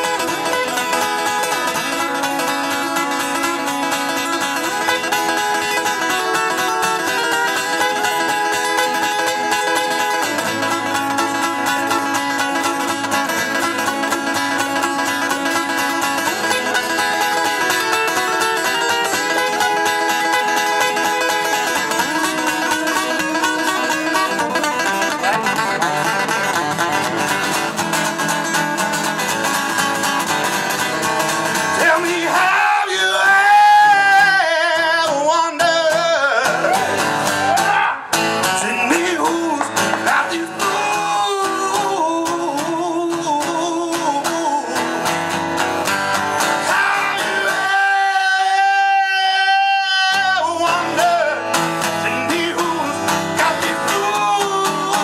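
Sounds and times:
acoustic guitar plucked notes: 0:00.0 - 0:55.0.

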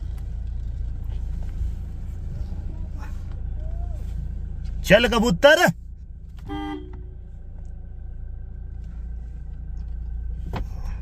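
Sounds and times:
car engine rumble from inside: 0:00.0 - 0:11.0.

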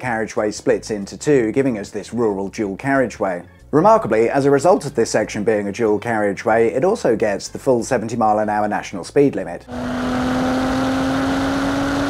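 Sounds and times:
car engine humming: 0:09.7 - 0:12.0.

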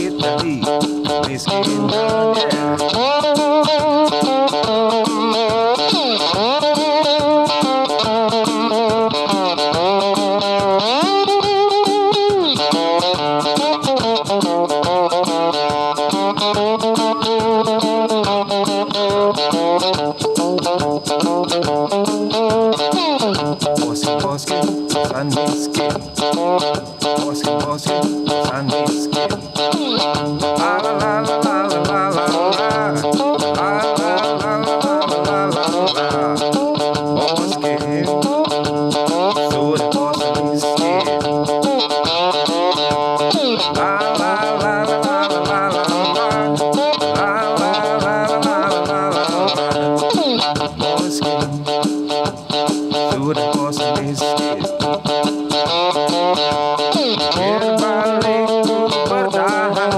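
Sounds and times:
amplified slide guitar blues riff: 0:00.0 - 0:59.9.

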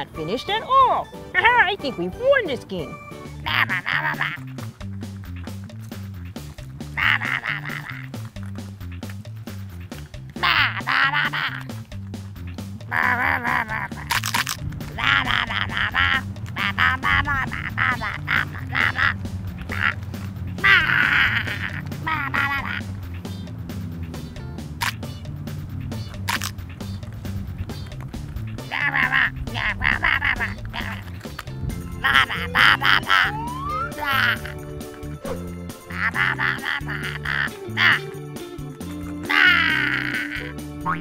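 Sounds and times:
background music: 0:00.0 - 0:41.0
cartoon character babbling: 0:10.4 - 0:11.6, 0:12.9 - 0:14.1, 0:14.9 - 0:20.0, 0:20.6 - 0:23.5, 0:28.6 - 0:31.0, 0:32.0 - 0:34.6, 0:37.1 - 0:38.1, 0:39.2 - 0:41.0
high-pitched cartoon voice babbling: 0:39.2 - 0:41.0.

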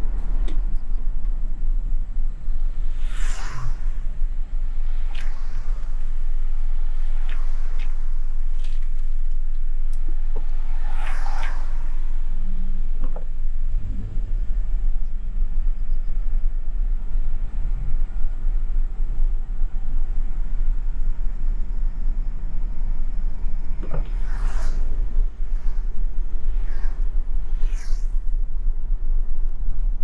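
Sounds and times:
car engine and tyre rumble: 0:00.0 - 0:30.0.

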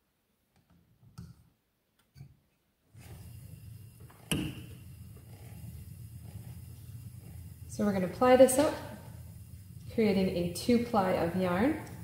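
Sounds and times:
spinning wheel whirring: 0:03.0 - 0:12.0.

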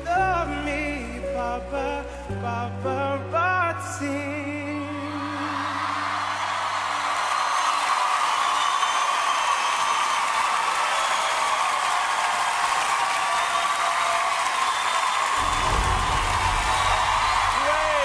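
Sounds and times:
audience applauding and cheering: 0:04.4 - 0:18.0
low rumble: 0:15.4 - 0:18.0.

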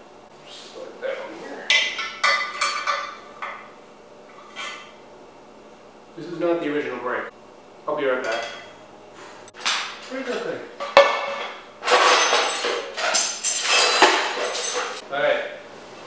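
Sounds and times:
metal parts clinking and rattling: 0:09.6 - 0:15.0.

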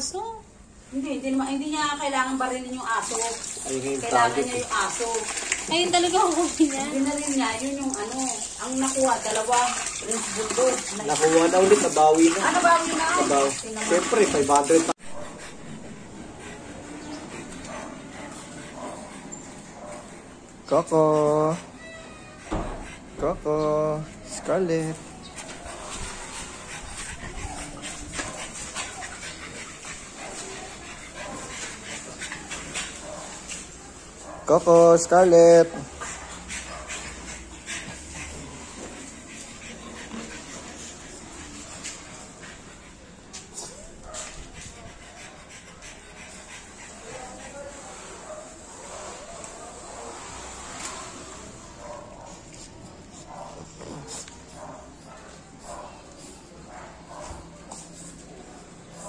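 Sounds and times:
dog panting: 0:00.6 - 0:59.0.

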